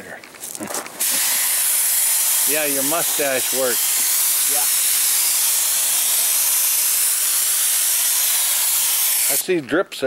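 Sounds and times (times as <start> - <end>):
paint spray gun hissing: 1.0 - 9.4.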